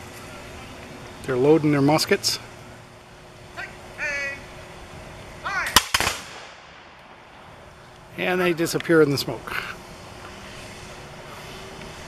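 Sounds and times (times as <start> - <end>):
person calling out: 5.4 - 5.8
musket shots: 5.7 - 7.2.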